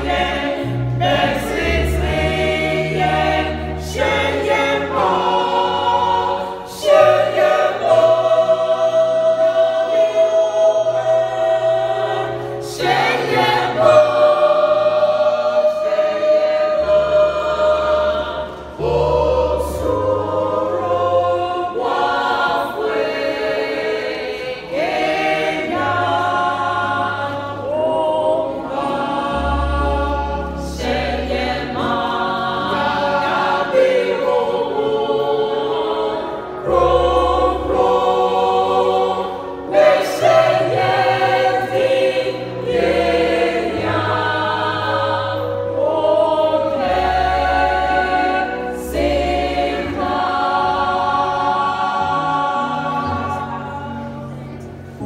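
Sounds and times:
mixed choir singing: 0.0s - 55.0s.

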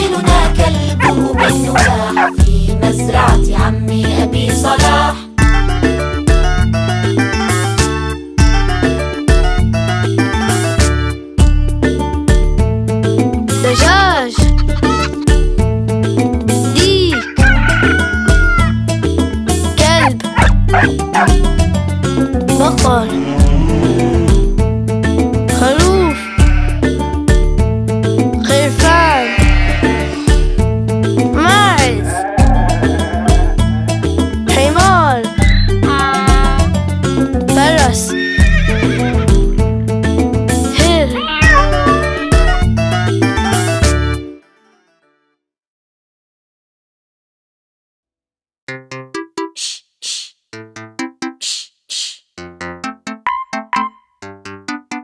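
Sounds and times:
upbeat children's song: 0.0s - 6.0s, 13.6s - 15.0s, 16.5s - 17.5s, 19.5s - 20.4s, 22.4s - 23.5s, 28.4s - 29.3s, 31.2s - 32.2s, 34.4s - 36.8s, 37.4s - 38.1s, 40.5s - 43.6s, 49.2s - 50.3s, 51.4s - 52.2s
children's song music: 0.0s - 44.8s, 48.8s - 55.0s
rooster crowing: 17.2s - 18.7s
horse whinny sound effect: 29.2s - 30.4s, 32.1s - 34.0s.

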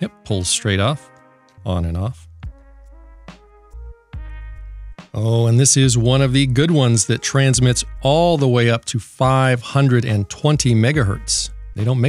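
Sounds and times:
steady low bass: 1.7s - 6.7s, 7.6s - 8.5s, 10.6s - 12.0s.

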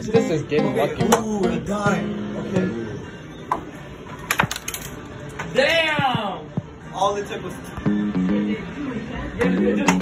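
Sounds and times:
arcade room din: 0.0s - 10.0s.

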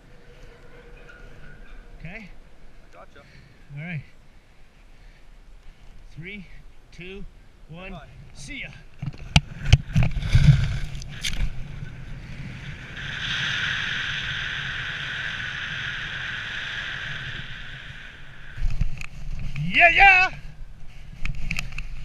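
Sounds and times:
wind rushing over microphone: 9.0s - 22.0s.

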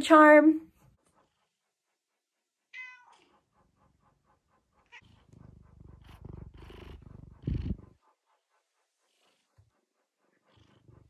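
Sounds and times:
cat purring: 0.6s - 11.0s
cat meowing: 2.7s - 3.2s.

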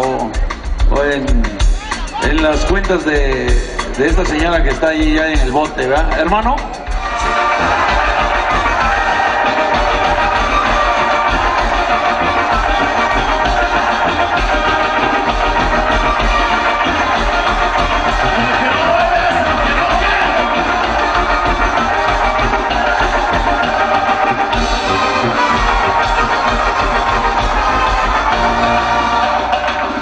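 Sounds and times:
live band music: 0.0s - 30.0s
low bass: 6.6s - 30.0s.

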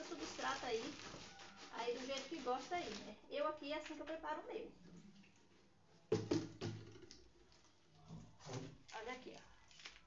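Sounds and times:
hollow drum-like knocks: 6.1s - 7.1s.

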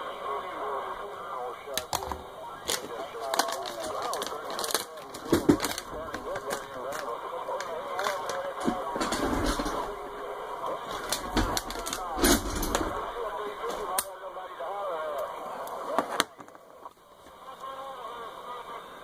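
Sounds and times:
garbled radio voices: 0.0s - 19.0s
static crashes and clicks: 1.7s - 14.1s.

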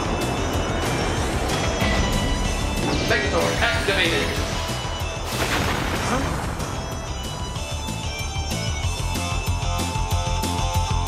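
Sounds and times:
loud crashing sound effect: 5.2s - 7.0s
rock music with steady beat: 6.8s - 11.0s.

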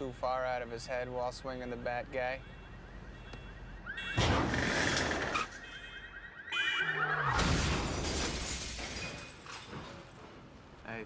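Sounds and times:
loud car crash: 4.1s - 5.6s, 7.3s - 10.0s.

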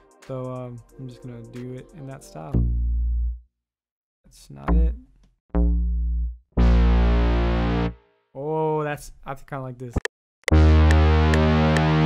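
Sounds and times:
synth bass notes: 2.6s - 3.4s, 4.6s - 8.0s, 10.5s - 12.0s.

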